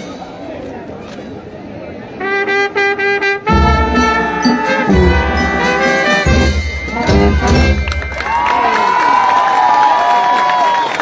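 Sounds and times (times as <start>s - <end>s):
marching band brass: 2.1s - 8.5s.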